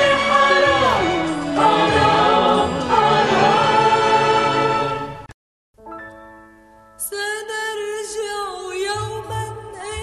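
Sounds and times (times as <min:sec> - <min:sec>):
song with gliding vocal melody: 0:00.0 - 0:05.3.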